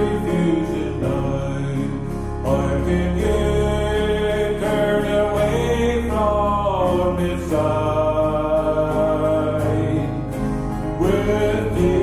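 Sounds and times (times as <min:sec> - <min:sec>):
acoustic guitar: 0:00.0 - 0:12.0
man singing: 0:00.0 - 0:12.0
piano accompaniment: 0:00.0 - 0:12.0.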